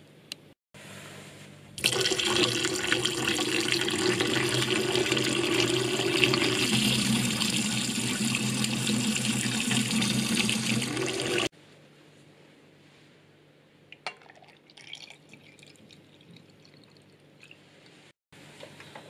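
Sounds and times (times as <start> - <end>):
tap water running into glass: 1.8 - 11.5, 14.1 - 17.1.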